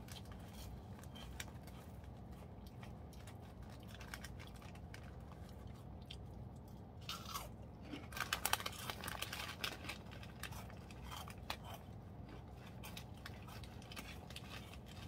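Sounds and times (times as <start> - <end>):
crunchy snack being chewed: 0.0 - 15.0.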